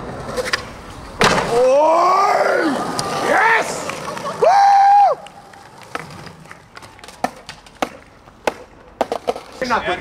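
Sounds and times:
skateboard rolling on concrete: 0:00.0 - 0:10.0
skateboard clacks: 0:02.8 - 0:09.8.

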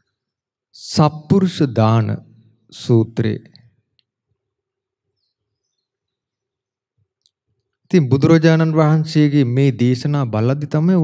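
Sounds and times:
man speaking loudly: 0:02.8 - 0:03.5, 0:07.9 - 0:11.0.

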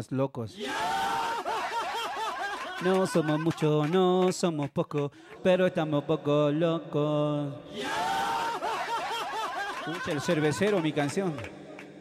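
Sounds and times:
person laughing in high bursts: 0:01.2 - 0:03.6, 0:08.4 - 0:10.8.

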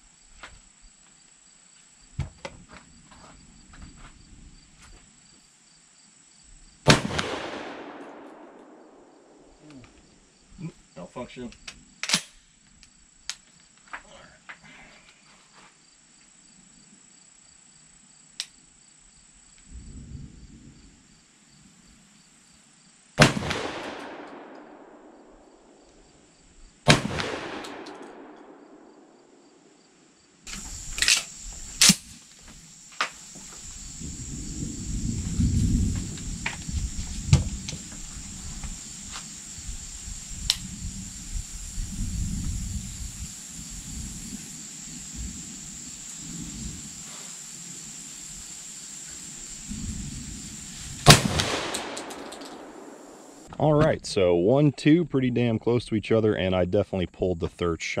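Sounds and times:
insects buzzing: 0:00.0 - 0:53.5
shotgun shots with echo: 0:06.9 - 0:09.5, 0:23.2 - 0:25.6, 0:26.9 - 0:29.4, 0:51.0 - 0:53.5
gun handling clicks: 0:11.5 - 0:13.5, 0:30.5 - 0:32.1, 0:51.4 - 0:52.8.

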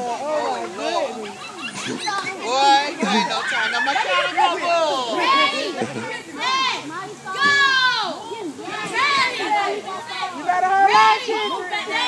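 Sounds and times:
children shouting and squealing: 0:00.2 - 0:12.0.

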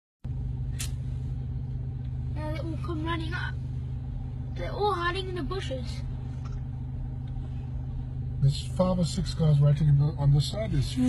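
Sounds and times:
vehicle engine rumble: 0:00.2 - 0:11.0.

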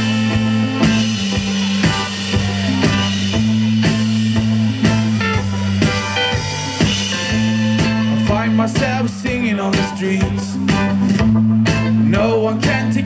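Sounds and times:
drum kit steady beat: 0:00.0 - 0:13.0
rock band playing: 0:00.0 - 0:13.0.

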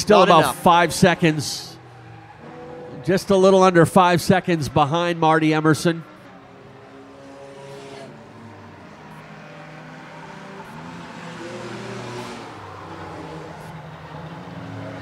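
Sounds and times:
race car engines: 0:00.0 - 0:15.0
race car passing by: 0:00.0 - 0:15.0.

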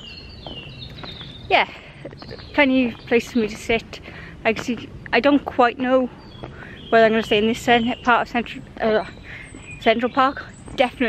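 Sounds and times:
bird whistling: 0:00.0 - 0:01.5.

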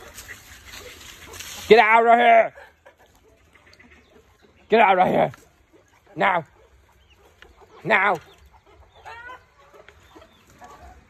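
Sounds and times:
chickens clucking: 0:00.0 - 0:11.0.

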